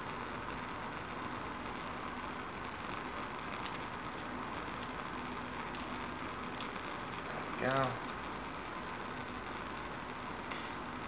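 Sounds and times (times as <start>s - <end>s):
burner flame hissing: 0.0s - 11.0s.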